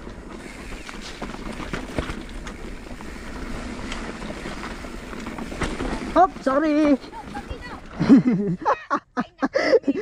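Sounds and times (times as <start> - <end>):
bike knocking over rocks: 0.0 - 8.3
tyres rumbling on dirt and stones: 0.0 - 8.6.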